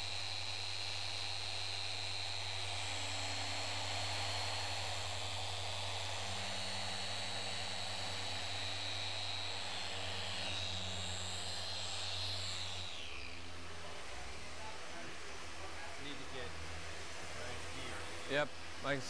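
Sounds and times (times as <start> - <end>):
electric polishers droning: 0.0 - 19.0.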